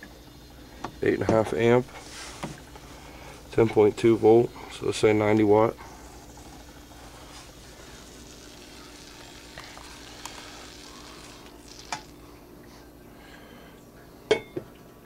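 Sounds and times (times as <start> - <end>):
faint steady hiss: 0.0 - 14.7
low steady hum: 0.0 - 15.0.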